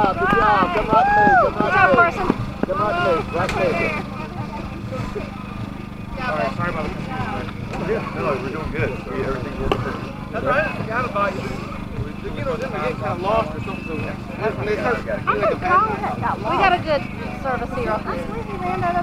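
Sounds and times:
people talking indistinctly: 0.0s - 19.0s
steady low hum: 0.0s - 19.0s.

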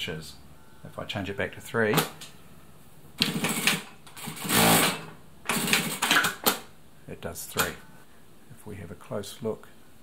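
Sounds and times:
sewing machine stitching: 3.2s - 6.6s.

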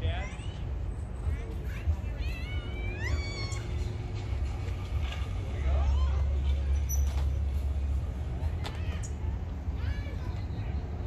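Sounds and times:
high-pitched voices calling out: 0.0s - 4.5s
low rumble: 0.6s - 11.0s.

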